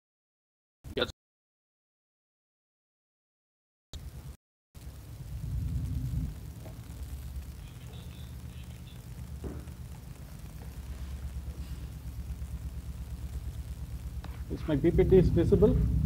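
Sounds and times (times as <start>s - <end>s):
low background rumble and hum: 4.0s - 16.0s.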